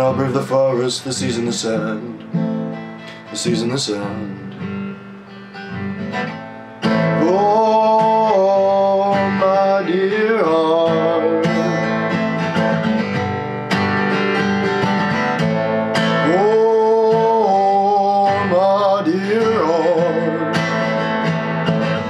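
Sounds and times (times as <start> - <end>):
acoustic guitar strummed and picked: 0.0 - 22.0.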